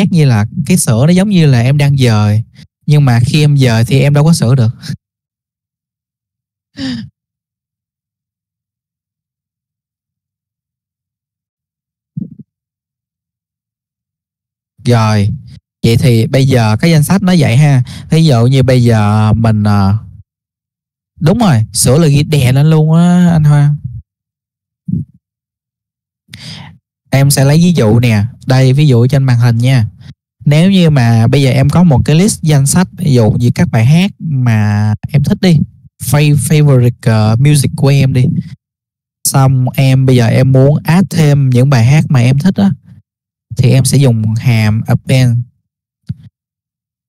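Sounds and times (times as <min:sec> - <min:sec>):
person breathing: 0:06.8 - 0:07.2, 0:17.8 - 0:18.1, 0:26.3 - 0:26.8
person sighing: 0:06.8 - 0:07.2.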